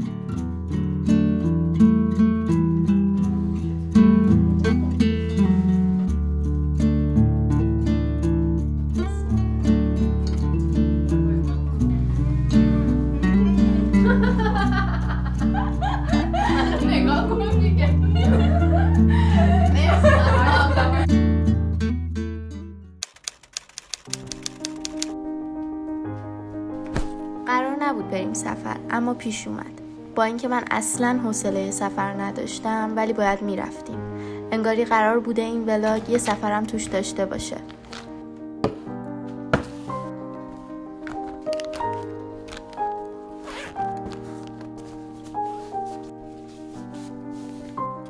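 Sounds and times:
soft background music: 0.0 - 22.0, 24.1 - 48.0
typewriter key clicks: 23.0 - 25.2
zip being pulled shut: 41.0 - 44.8.

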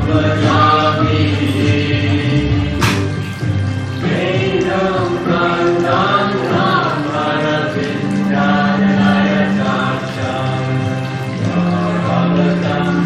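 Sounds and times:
group singing devotional chant: 0.0 - 13.0.

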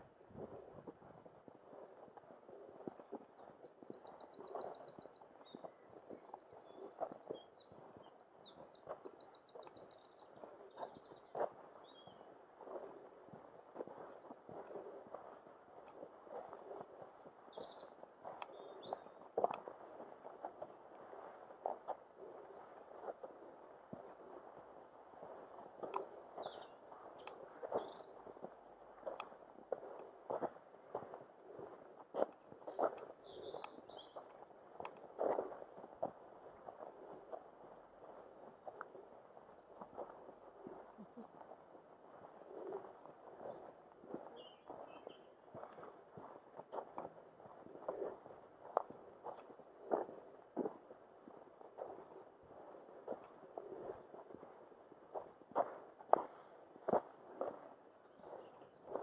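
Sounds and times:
footsteps on dirt track: 0.0 - 59.0
faint bird calls: 0.4 - 59.0.

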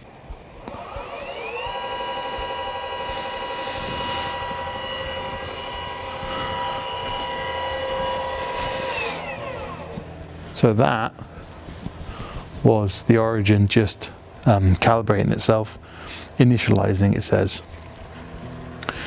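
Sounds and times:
telescope mount motors whining: 0.0 - 19.0.

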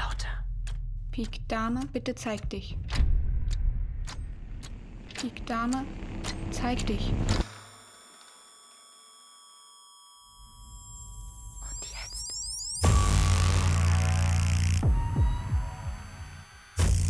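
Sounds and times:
low rumble: 0.0 - 7.4.

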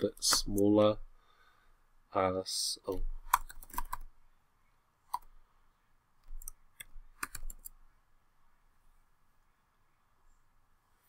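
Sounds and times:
keyboard keys tapping: 0.0 - 0.8, 2.9 - 4.1, 6.2 - 7.8.

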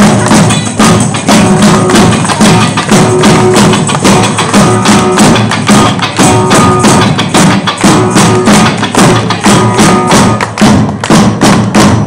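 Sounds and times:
live rock band playing: 0.0 - 10.6
heavy drum hits: 0.0 - 12.0.

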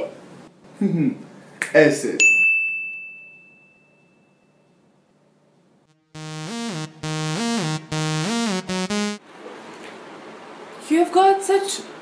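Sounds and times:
bell-like ding: 2.3 - 4.6.

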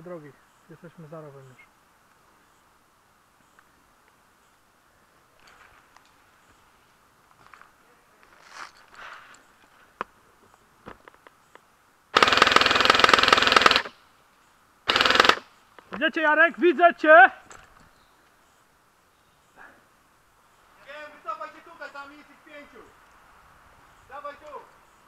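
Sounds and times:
airsoft rifle firing full-auto: 12.1 - 14.0, 14.9 - 15.4.

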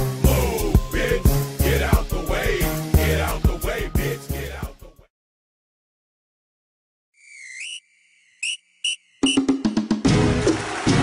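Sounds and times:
high whistle bending upward: 7.2 - 9.5
short whistle chirps: 7.2 - 9.6.

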